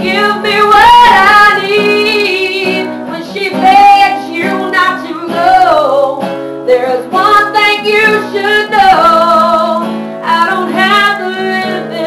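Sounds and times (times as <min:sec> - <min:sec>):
acoustic guitar: 0:00.0 - 0:12.0
woman singing: 0:00.0 - 0:12.0.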